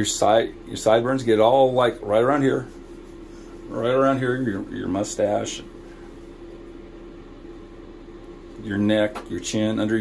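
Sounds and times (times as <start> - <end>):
ventilation fan humming: 0.0 - 10.0.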